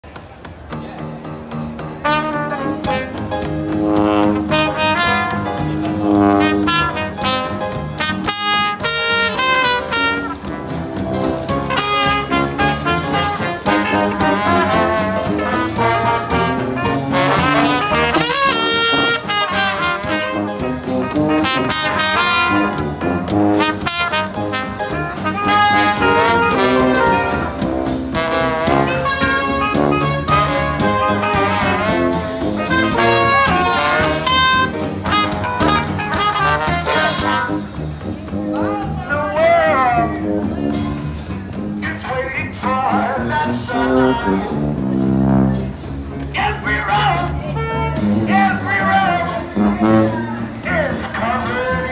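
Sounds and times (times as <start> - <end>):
jazz band with brass horns: 0.7 - 51.9.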